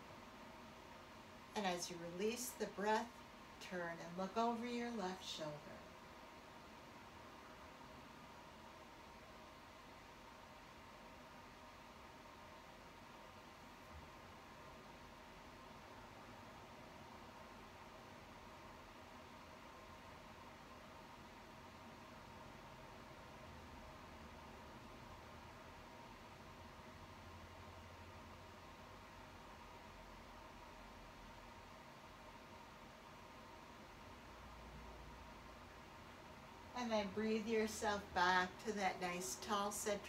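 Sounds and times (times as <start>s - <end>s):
faint recording hiss: 0.0s - 40.0s.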